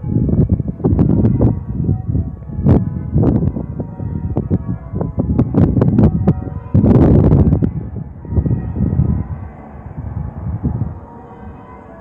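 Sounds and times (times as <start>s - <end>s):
church bells ringing: 0.0s - 12.0s
heavy low rumbling: 0.0s - 12.0s
loud rush of noise: 0.0s - 12.0s.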